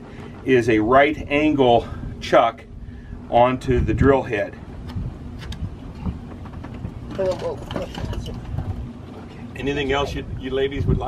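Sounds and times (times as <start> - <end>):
steady low rumble: 0.0 - 11.0.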